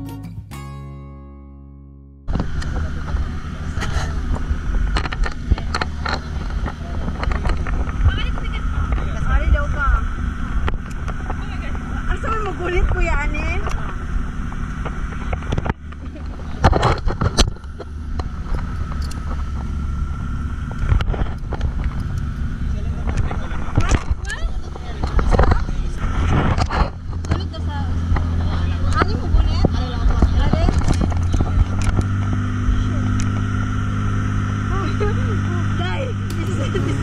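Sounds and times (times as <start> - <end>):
speedboat engine drone: 2.3 - 37.0
wind: 2.3 - 37.0
voices: 2.6 - 17.0, 21.6 - 26.3, 26.9 - 33.4, 34.7 - 37.0.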